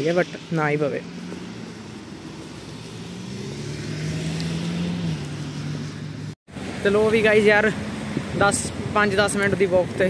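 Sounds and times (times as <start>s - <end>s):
car driving past: 1.0s - 6.8s.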